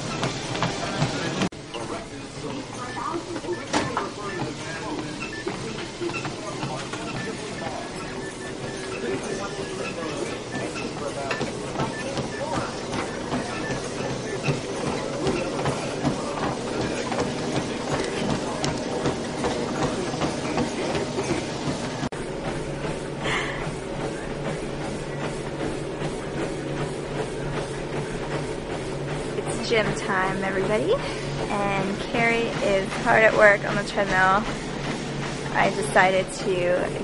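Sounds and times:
footfalls on a treadmill: 0.0 - 37.0.

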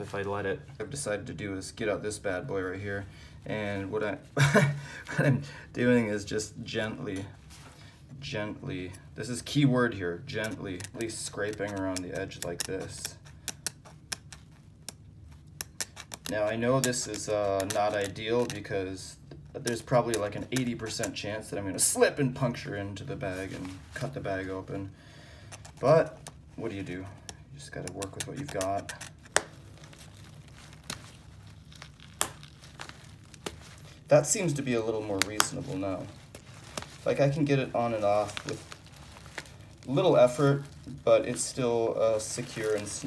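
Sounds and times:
fabric crinkling: 0.0 - 5.4, 22.6 - 43.0.

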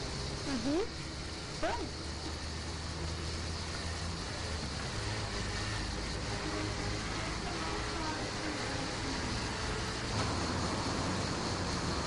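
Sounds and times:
hiss: 0.0 - 12.0
low engine hum: 0.0 - 12.0.

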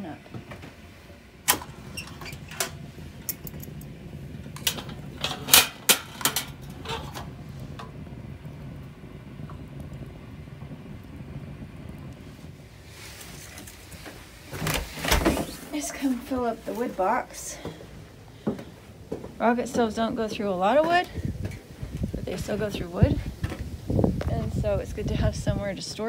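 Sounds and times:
wood fire rumbling: 0.0 - 26.0
metal clanks and knocks: 1.5 - 8.0.

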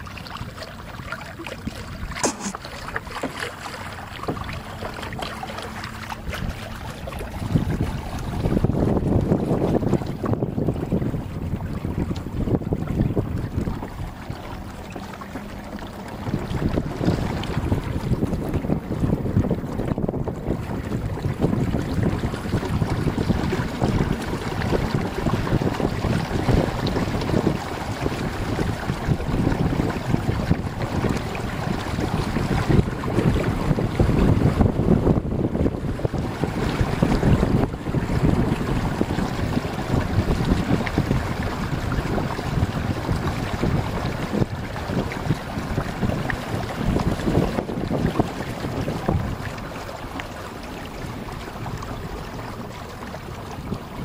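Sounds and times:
water splashing along hull: 0.0 - 54.0
wind buffeting microphone: 0.0 - 54.0.

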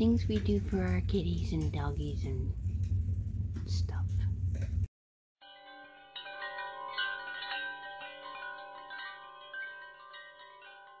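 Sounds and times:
chimes ringing: 5.4 - 11.0.

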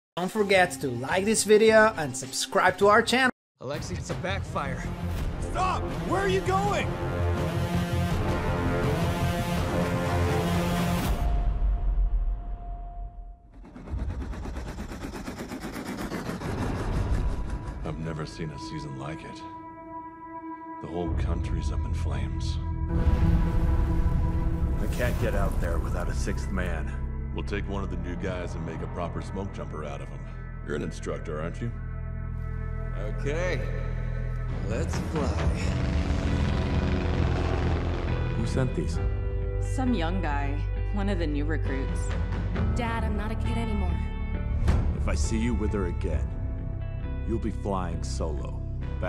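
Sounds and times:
helicopter rotor blades chopping: 13.5 - 18.1
propeller plane engine drone: 35.9 - 38.3.

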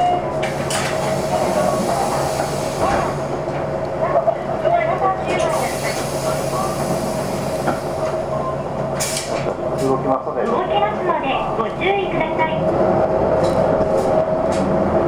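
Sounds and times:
diesel bus engine idling: 0.0 - 15.0
brief air hiss: 9.0 - 9.4.

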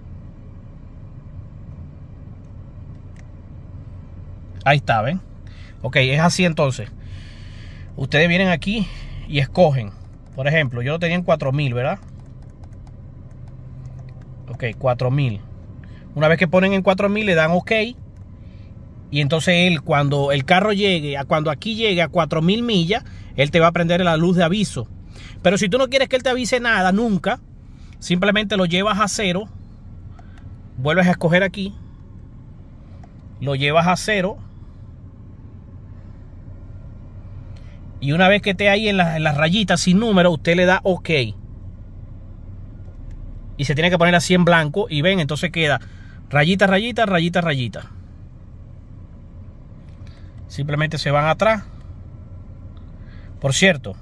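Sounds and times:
car engine idling: 0.0 - 54.0
steady low hum: 0.0 - 54.0
steering wheel switch clicks: 9.3 - 10.8, 11.4 - 15.9, 30.0 - 30.7.

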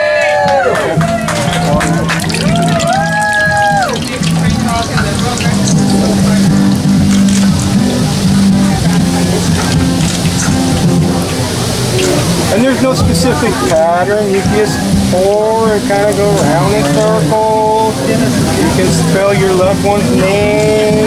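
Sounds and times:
background music: 0.5 - 21.0
batter sizzling in hot oil: 1.5 - 20.2.

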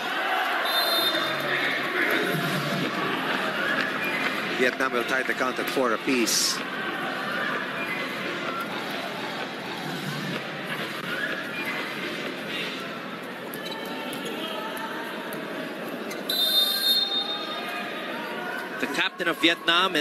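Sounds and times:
crowd voices din: 0.0 - 20.0.

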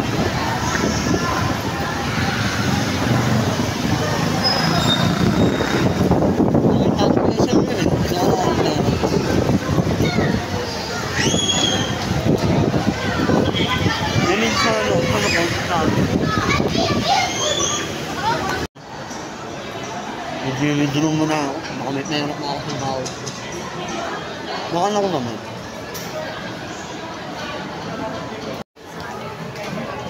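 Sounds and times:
children calling and chattering: 0.0 - 30.0
city traffic: 0.0 - 30.0.

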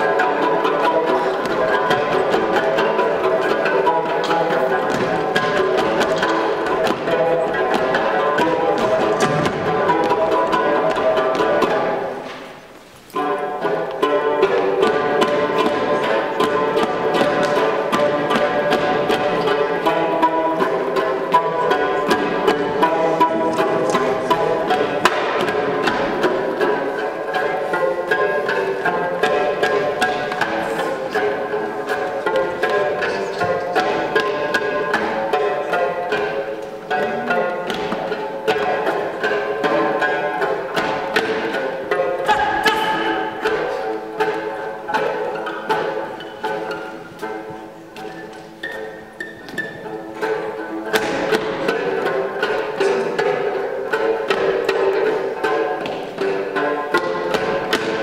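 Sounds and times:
plucked lute dance tune: 0.0 - 58.0.

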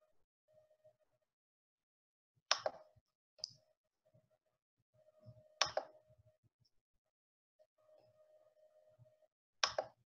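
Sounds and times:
computer mouse clicking: 5.6 - 6.0, 9.6 - 9.9.

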